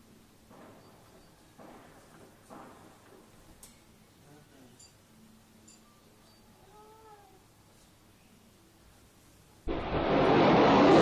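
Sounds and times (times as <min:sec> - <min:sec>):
faint cat meow: 0:06.5 - 0:07.5.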